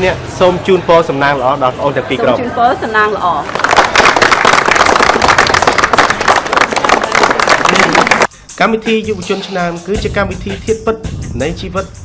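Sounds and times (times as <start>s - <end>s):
group of people applauding: 3.5s - 8.3s.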